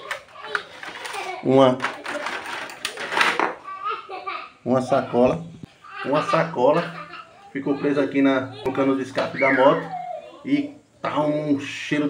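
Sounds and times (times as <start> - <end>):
voices talking: 4.2 - 12.0.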